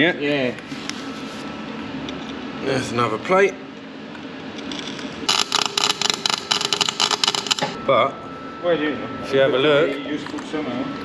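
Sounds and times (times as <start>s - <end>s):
welding arc crackling: 5.3s - 7.8s.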